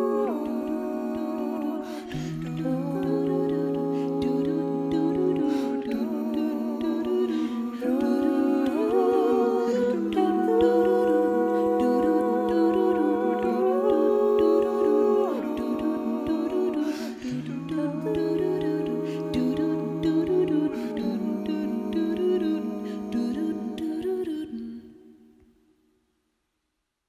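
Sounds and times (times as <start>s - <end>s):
a cappella ensemble singing chords: 0.0s - 25.6s.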